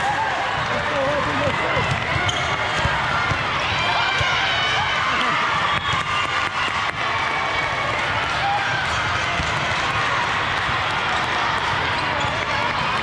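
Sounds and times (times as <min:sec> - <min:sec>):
volleyball impacts: 0:00.6 - 0:04.6, 0:08.2 - 0:13.0.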